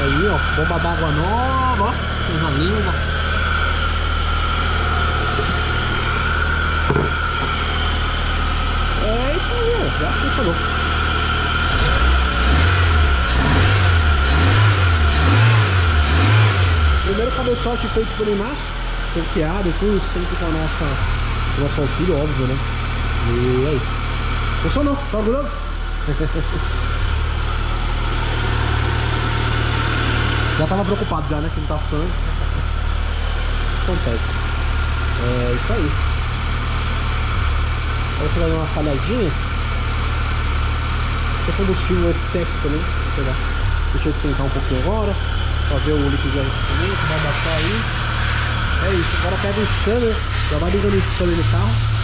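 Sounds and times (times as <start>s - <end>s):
high-pitched whine: 0.0s - 22.6s, 41.2s - 52.0s
car engine idling: 0.0s - 52.0s.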